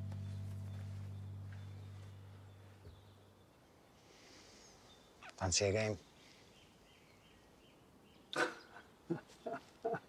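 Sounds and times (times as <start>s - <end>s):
man laughing in breathy bursts: 8.4s - 10.0s.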